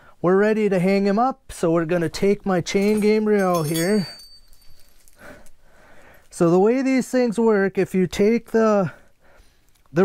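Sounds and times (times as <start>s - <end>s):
thin metallic ring: 2.7s - 5.3s
chain links clinking and rattling: 2.7s - 5.5s.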